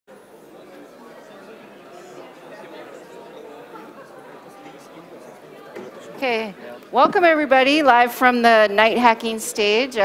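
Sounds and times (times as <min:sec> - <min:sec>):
murmur of crowd chatter: 0:00.1 - 0:10.0.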